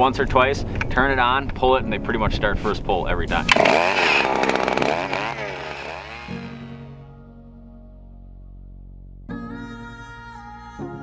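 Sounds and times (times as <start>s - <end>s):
soft background music: 0.0s - 3.6s
ice auger engine revving: 3.4s - 7.0s.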